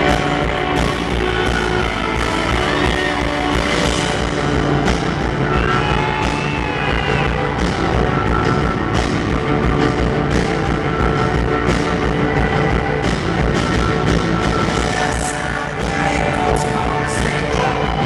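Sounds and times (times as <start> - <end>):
bass guitar: 0.0 - 18.0
electric guitar: 0.0 - 18.0.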